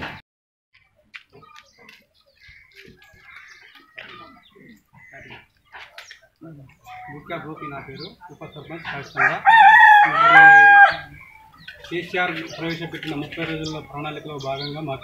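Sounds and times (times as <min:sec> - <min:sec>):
faint background voices: 0:00.8 - 0:15.0
rooster crowing: 0:09.2 - 0:11.1.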